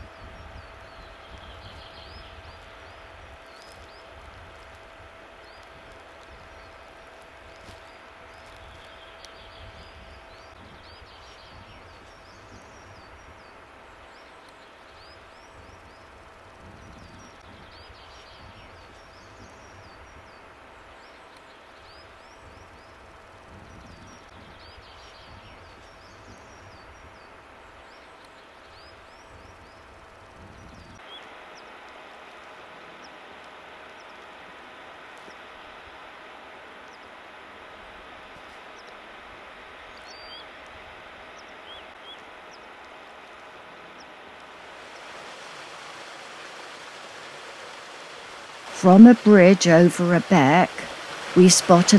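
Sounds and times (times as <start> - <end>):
small birds chirping: 0.0 - 4.8, 5.4 - 31.7
steady hiss: 0.0 - 51.9
water rushing in a stream: 44.4 - 51.9.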